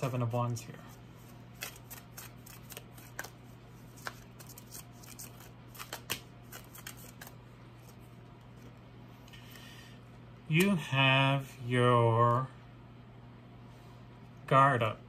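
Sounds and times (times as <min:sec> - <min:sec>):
cards being shuffled: 0:00.9 - 0:08.8.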